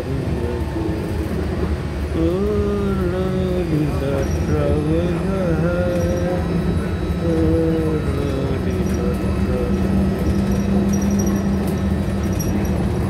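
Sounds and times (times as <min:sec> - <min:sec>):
monorail drone from inside: 0:00.0 - 0:13.0
person singing wavering notes: 0:02.2 - 0:11.6.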